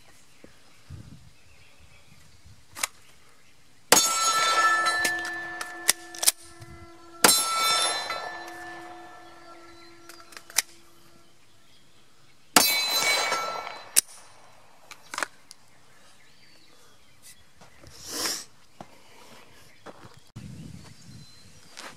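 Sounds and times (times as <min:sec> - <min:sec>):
steel target ringing: 0:03.9 - 0:11.3, 0:12.6 - 0:14.5
sharp clicks: 0:10.0 - 0:10.8
pistol shots: 0:12.6 - 0:14.5.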